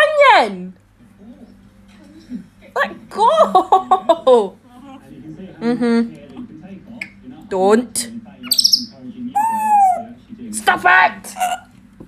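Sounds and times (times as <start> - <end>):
parrot calling: 8.4 - 10.2, 11.2 - 11.7.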